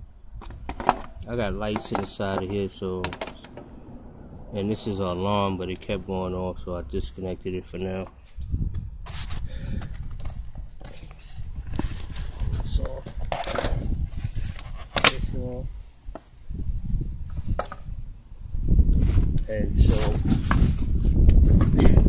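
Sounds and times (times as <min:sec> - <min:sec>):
low rumble: 0:01.2 - 0:09.0.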